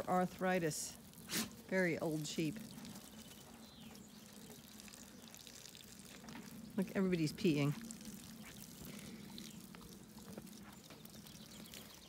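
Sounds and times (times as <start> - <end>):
liquid trickling onto grass: 0.0 - 12.0.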